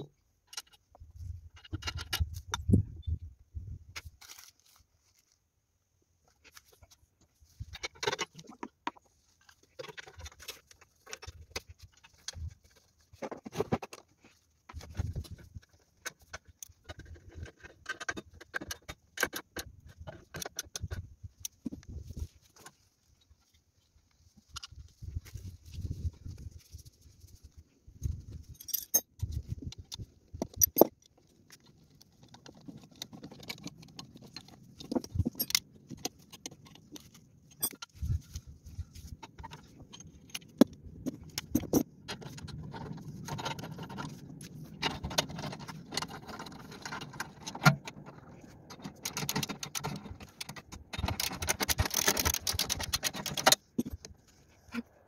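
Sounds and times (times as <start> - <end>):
parts clicking and knocking: 0.0 - 2.8, 7.6 - 23.4, 28.0 - 54.9.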